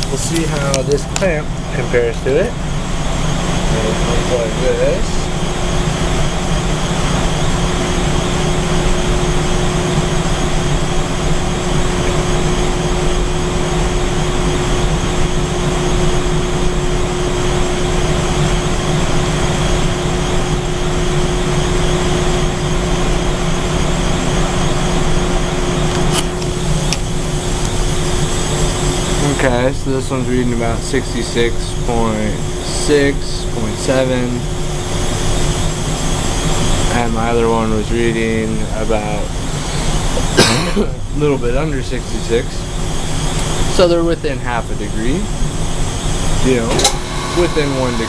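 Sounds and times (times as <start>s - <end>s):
hvac mechanical hum: 0.0s - 48.0s.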